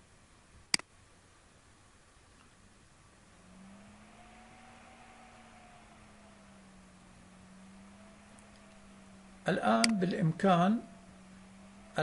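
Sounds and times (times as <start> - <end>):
faint steady hum: 0.0 - 12.0
soft hiss: 0.0 - 12.0.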